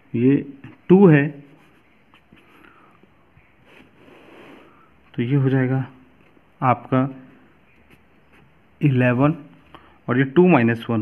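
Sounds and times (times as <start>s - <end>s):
person speaking: 0.0s - 2.6s, 5.1s - 11.0s.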